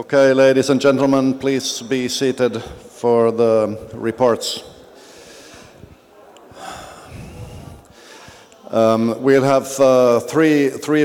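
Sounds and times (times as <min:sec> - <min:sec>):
breathing into microphone: 0:02.6 - 0:03.0, 0:04.6 - 0:08.7.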